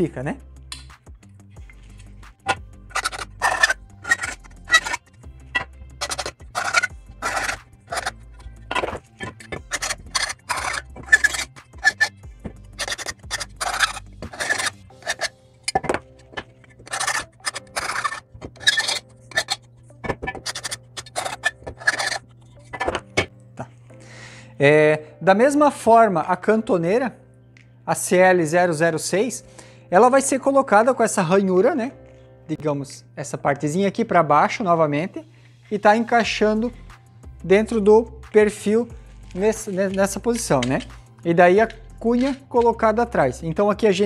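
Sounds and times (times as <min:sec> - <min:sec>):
background music: 0:00.0 - 0:44.0
hand file scraping metal: 0:02.5 - 0:12.2, 0:12.8 - 0:23.1, 0:41.6 - 0:42.7.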